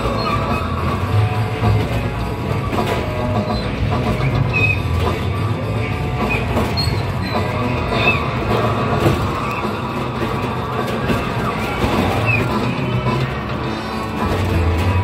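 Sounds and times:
coaster train rumbling on track: 0.0 - 15.0
music: 0.0 - 15.0.

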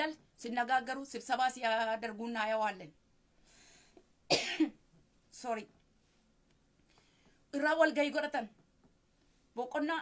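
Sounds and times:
woman coughing: 4.3 - 4.8.

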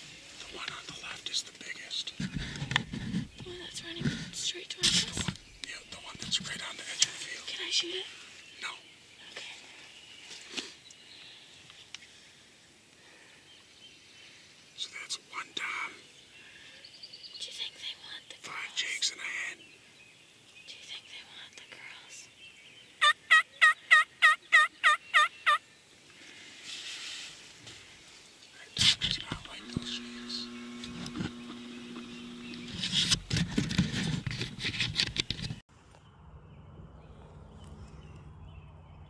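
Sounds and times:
turkey yelping: 23.0 - 25.6.

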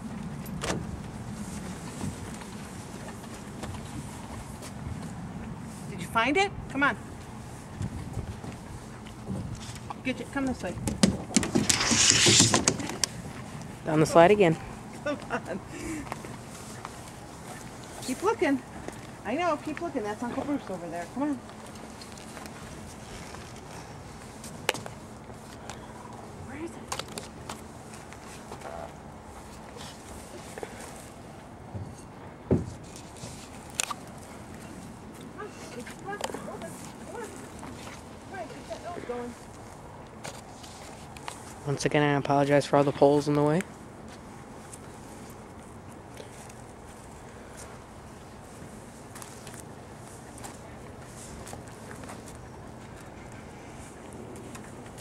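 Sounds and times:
outdoor background noise: 0.0 - 55.0.

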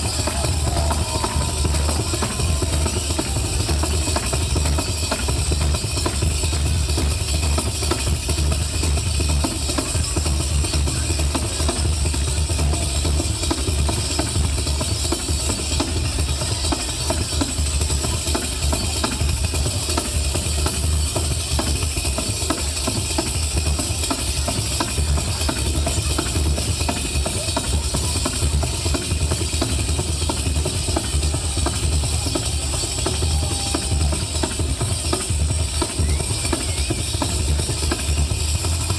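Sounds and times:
bass: 0.0 - 38.9
frame drums fast beat: 0.0 - 38.9.

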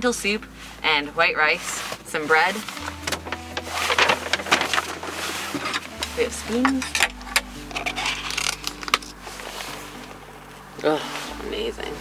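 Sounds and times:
plastic lid crinkling: 2.8 - 6.0, 6.6 - 9.2.

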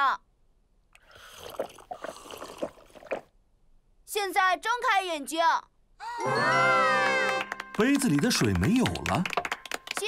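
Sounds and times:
cartoon gulping and slurping: 0.9 - 3.4.

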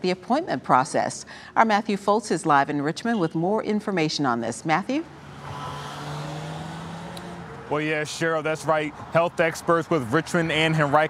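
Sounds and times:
vehicle engine humming by: 5.0 - 11.0.

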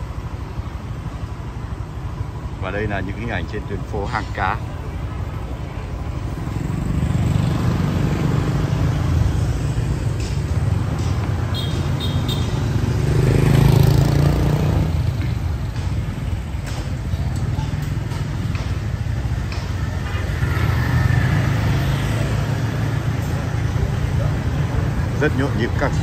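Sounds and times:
motorbike engines passing: 0.0 - 26.0
street traffic: 0.0 - 26.0.

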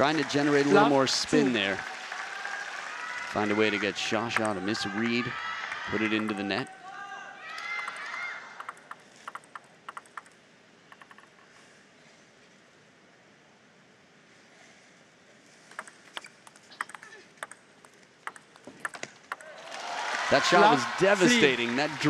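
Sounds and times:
table tennis ball clicking: 7.8 - 11.4, 15.7 - 19.5.

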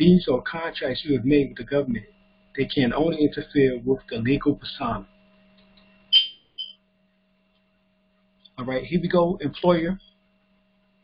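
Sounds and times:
short high electronic beeps: 6.1 - 6.8.

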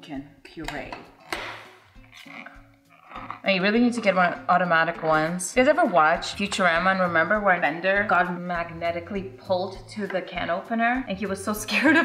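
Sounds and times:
can opener scraping: 1.2 - 5.4.

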